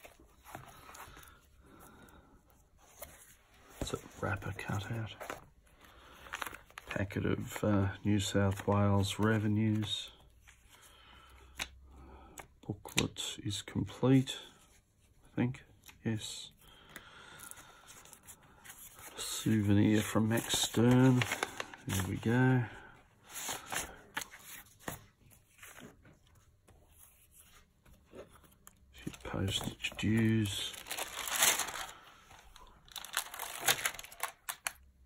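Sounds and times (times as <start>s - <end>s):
paper pages rustling: 2.8s - 7.6s, 8.2s - 10.8s, 17.4s - 22.6s, 23.2s - 34.8s
paper rustling and sliding: 18.0s - 22.4s, 23.2s - 28.6s.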